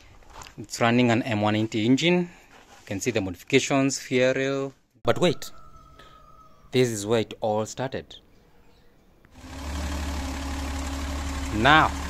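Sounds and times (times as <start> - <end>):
car engine idling: 9.4 - 12.0.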